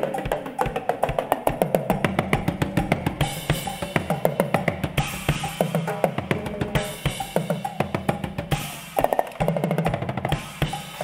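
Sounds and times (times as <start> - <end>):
drum solo on toms and cymbals: 0.0 - 11.0.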